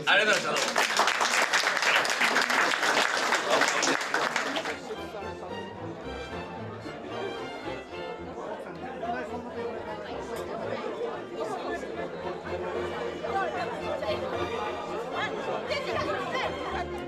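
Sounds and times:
hubbub of overlapping voices: 0:01.8 - 0:17.0
background music: 0:02.6 - 0:17.0.

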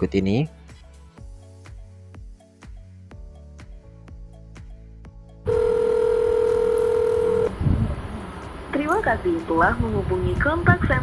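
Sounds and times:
telephone tone: 0:05.5 - 0:07.6.

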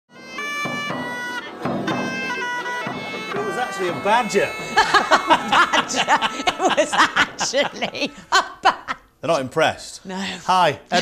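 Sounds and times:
bagpipe music with drone: 0:00.1 - 0:08.2
person speaking: 0:10.7 - 0:11.0.

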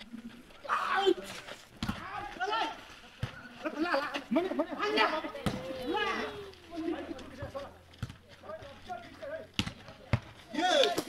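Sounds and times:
players calling: 0:00.0 - 0:11.0
volleyball being hit by hands: 0:09.6 - 0:11.0.

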